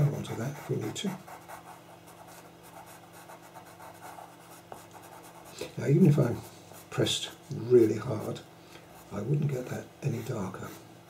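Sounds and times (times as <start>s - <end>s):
pastel pencil scratching on paper: 0.0s - 5.6s.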